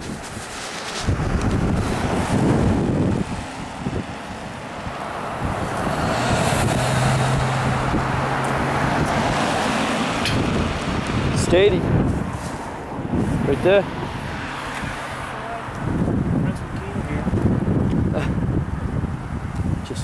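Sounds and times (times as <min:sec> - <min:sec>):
wind buffeting microphone: 0:00.0 - 0:20.0
car passing close by: 0:00.4 - 0:16.4.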